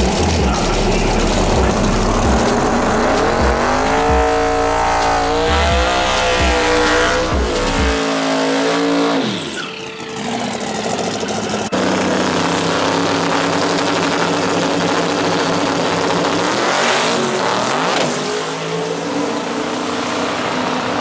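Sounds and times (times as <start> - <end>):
car engine revving: 0.0 - 21.0
tires spinning: 0.0 - 21.0.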